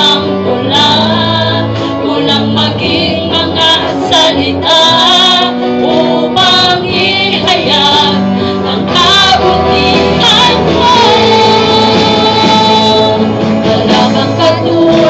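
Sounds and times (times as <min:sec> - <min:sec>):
bass guitar: 0:00.0 - 0:15.0
electric guitar: 0:00.0 - 0:15.0
woman singing into a microphone: 0:00.0 - 0:15.0.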